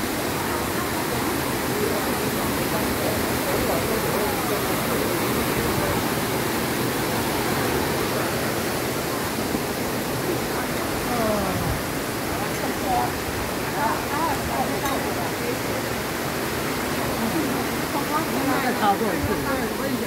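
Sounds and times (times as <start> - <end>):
waterfall rushing over rocks: 0.0 - 20.0.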